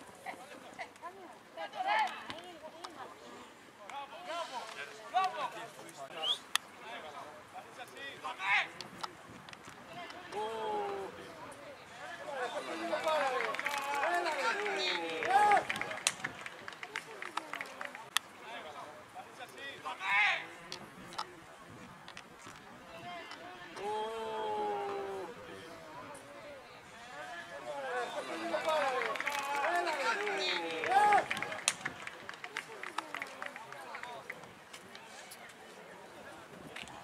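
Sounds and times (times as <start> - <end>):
men shouting: 12.3 - 15.8, 27.7 - 31.6.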